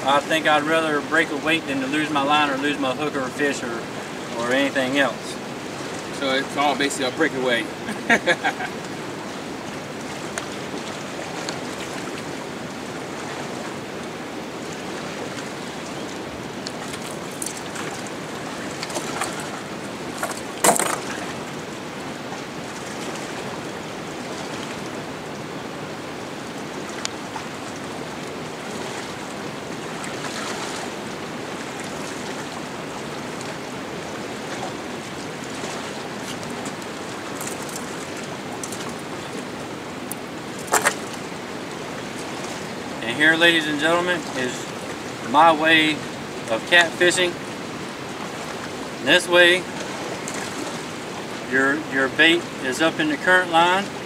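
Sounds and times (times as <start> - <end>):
flowing river water: 0.0 - 54.0.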